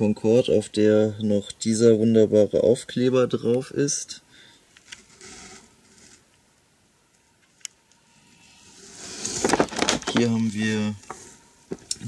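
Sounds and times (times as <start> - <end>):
plastic wrap rustling: 9.0 - 10.7.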